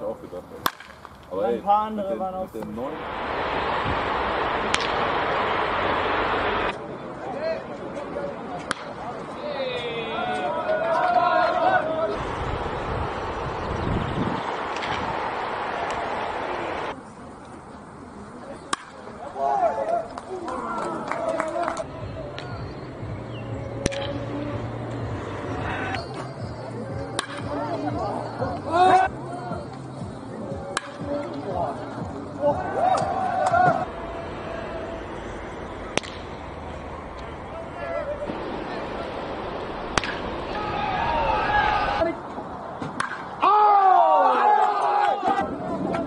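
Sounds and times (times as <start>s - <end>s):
steady background noise: 0.0s - 46.0s
baseball bat hitting ball: 0.6s - 1.3s, 4.7s - 5.1s, 14.6s - 16.5s, 23.8s - 24.2s, 27.1s - 27.6s, 30.8s - 31.0s, 35.9s - 36.5s, 39.8s - 40.6s, 42.8s - 43.3s.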